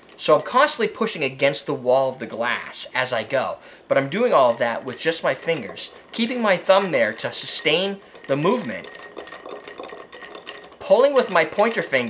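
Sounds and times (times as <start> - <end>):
spoon stirring ice in glass: 4.0 - 12.0.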